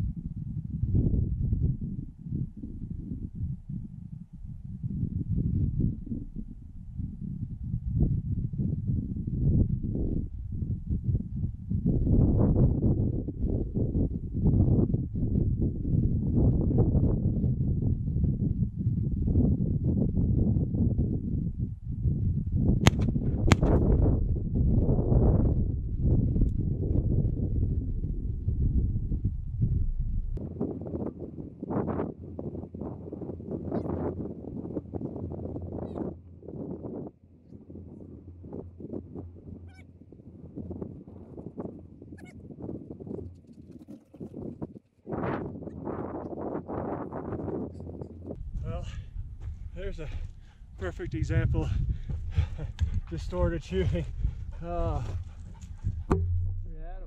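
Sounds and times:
wind buffeting microphone: 0.0s - 57.0s
sharp cracks: 22.8s - 23.8s.

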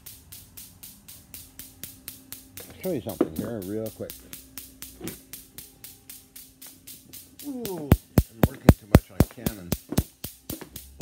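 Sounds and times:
low electrical hum: 0.0s - 11.0s
rapid even clicking: 0.0s - 11.0s.

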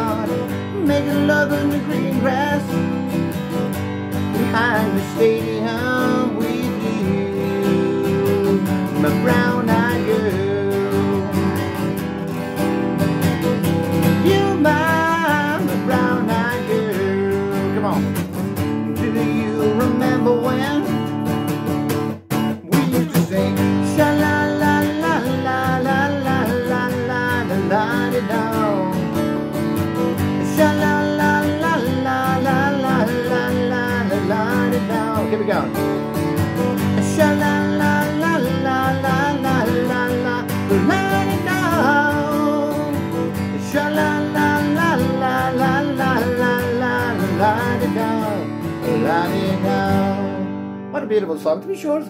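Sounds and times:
wordless vocal melody: 0.0s - 21.6s, 22.5s - 52.0s
acoustic guitar strumming: 0.0s - 52.0s.

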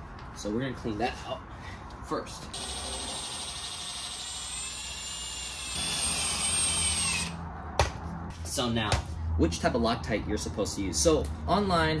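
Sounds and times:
cordless drill whining: 2.6s - 7.4s.

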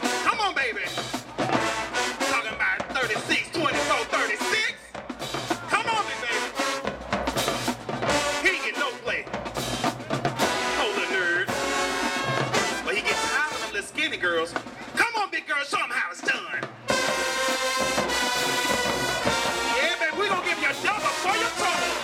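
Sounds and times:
brass melody: 0.0s - 14.2s, 16.8s - 22.0s
snare and bass drums: 0.0s - 15.3s, 16.2s - 22.0s.

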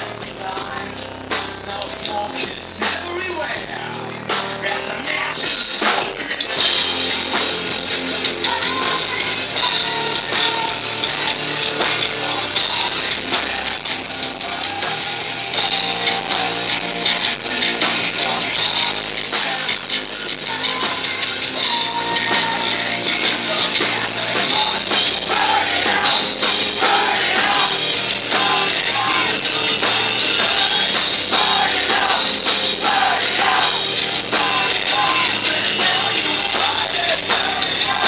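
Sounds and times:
bass guitar: 0.0s - 38.0s
drum kit: 0.0s - 38.0s
electric guitar: 0.0s - 38.0s.

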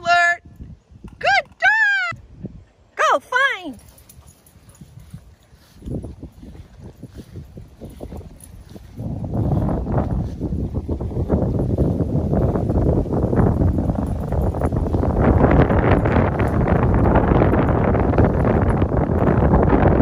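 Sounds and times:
wind on microphone: 0.0s - 2.9s, 3.7s - 20.0s
footsteps through grass: 4.0s - 12.2s.

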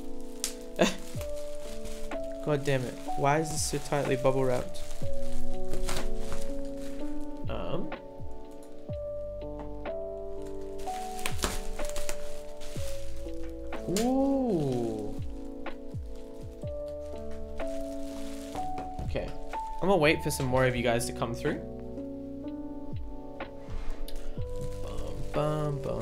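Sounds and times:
background music with sustained notes: 0.0s - 26.0s
package knocking and thunking: 10.8s - 14.1s.

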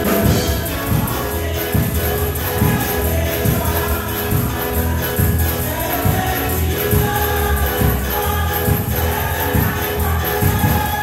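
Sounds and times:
band with steady beat: 0.0s - 11.0s
congregation singing: 0.0s - 11.0s.

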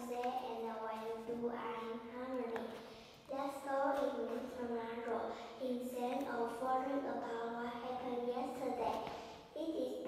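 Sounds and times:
girl speaking into microphone: 0.0s - 10.0s.

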